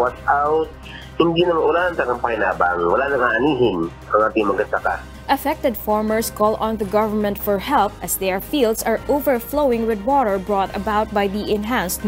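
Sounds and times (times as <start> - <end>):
man speaking over telephone: 0.0 - 5.0
news background music: 0.0 - 12.0.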